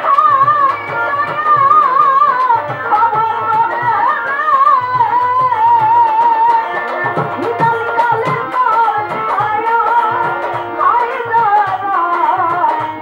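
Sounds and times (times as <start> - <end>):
drum quick steady beat: 0.0 - 10.6
bowed violin: 0.0 - 13.0
woman singing with vibrato: 0.0 - 13.0.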